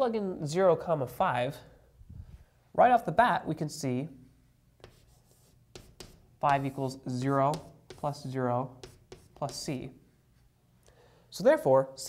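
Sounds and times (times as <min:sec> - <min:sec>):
chalk strokes on chalkboard: 0:04.8 - 0:09.9.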